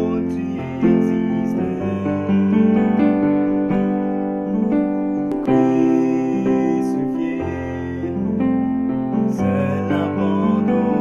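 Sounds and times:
keyboard playing chords: 0.0 - 11.0.

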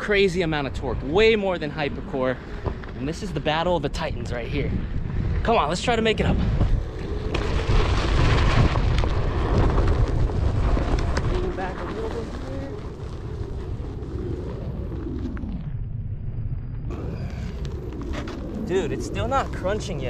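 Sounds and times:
wind buffeting microphone: 0.0 - 20.0
tyre rolling over gravel: 6.7 - 15.4.

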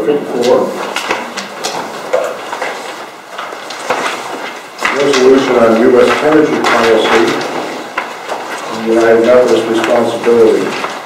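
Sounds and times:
paper pages rustling: 0.4 - 11.0
murmured speech: 4.8 - 7.6, 8.7 - 10.9.

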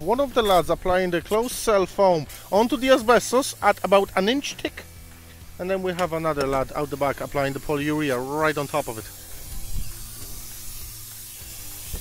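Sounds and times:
spray gun hissing: 0.0 - 12.0.

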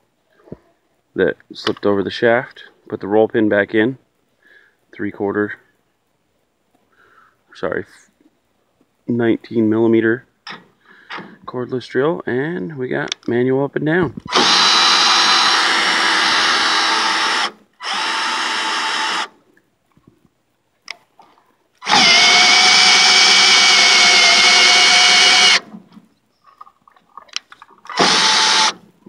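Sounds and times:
cordless drill whining: 14.3 - 19.3, 21.8 - 25.6, 27.9 - 28.8.

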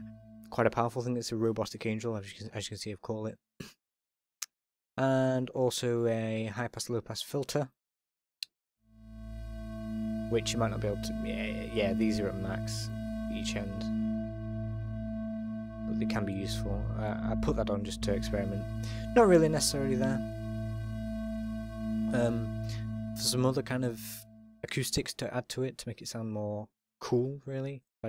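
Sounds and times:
low bass tone: 0.0 - 1.2, 8.9 - 25.1
synthesizer pad sustained note: 0.0 - 1.4, 8.9 - 25.2.

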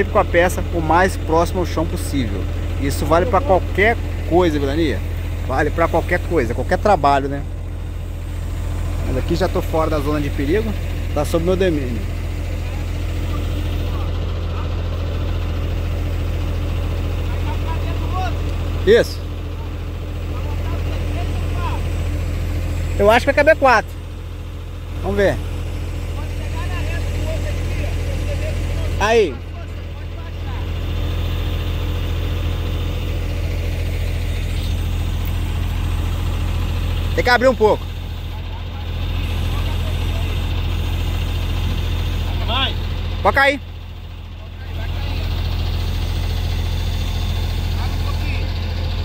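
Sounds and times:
truck diesel engine droning: 0.0 - 49.0.

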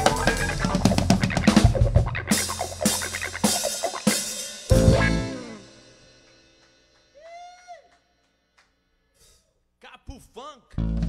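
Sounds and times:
person hooting call: 0.0 - 4.1, 7.1 - 8.0.

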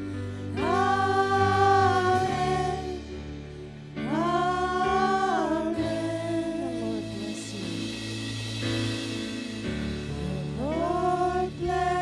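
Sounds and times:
sustained band chords: 0.0 - 12.0.

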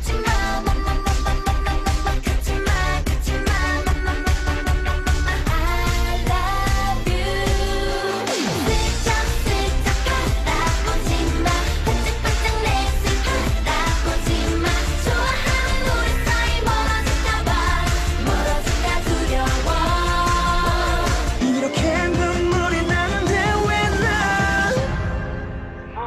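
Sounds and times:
pop song with dance beat: 0.0 - 26.0.

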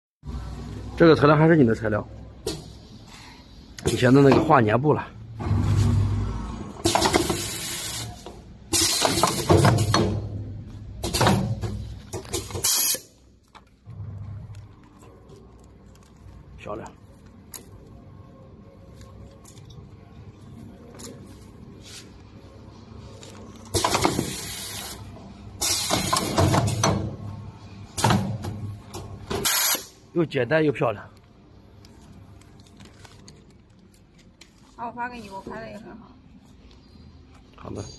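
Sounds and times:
compressed air hiss: 12.5 - 13.1, 29.4 - 29.9
compressed air hissing: 12.5 - 13.1, 23.8 - 25.0, 29.4 - 29.9.

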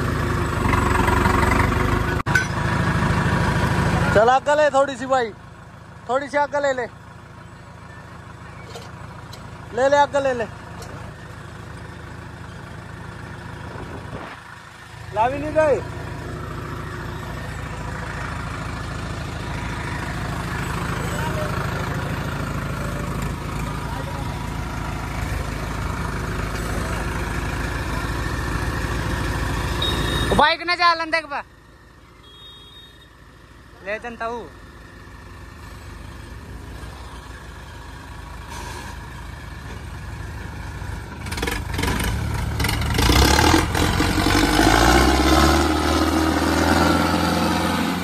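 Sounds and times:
tractor diesel engine running: 0.0 - 48.0.

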